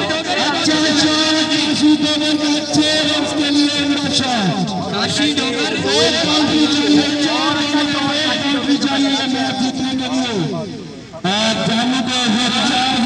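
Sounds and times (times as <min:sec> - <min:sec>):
men talking over one another: 0:00.0 - 0:13.0.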